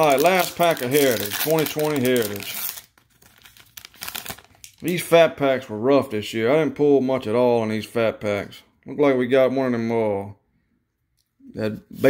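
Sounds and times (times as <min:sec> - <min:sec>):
wrapper crinkling: 0:00.0 - 0:05.0.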